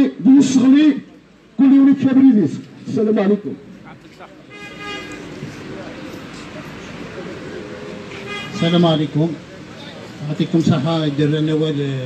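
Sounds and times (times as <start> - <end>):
crowd chatter: 0.8 - 12.0
vehicle horn: 4.5 - 5.3, 8.1 - 9.0.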